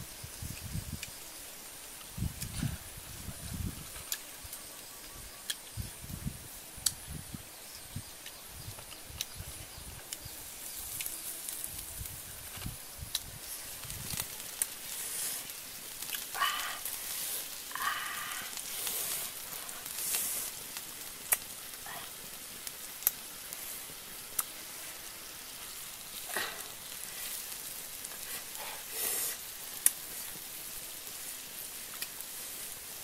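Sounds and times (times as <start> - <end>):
squid sizzling on hot stone: 0.0 - 33.0
wood fire crackling: 0.0 - 33.0.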